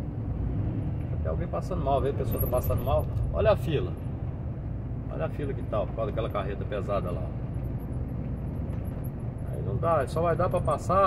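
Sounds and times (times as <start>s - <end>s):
truck engine rumble: 0.0s - 11.0s.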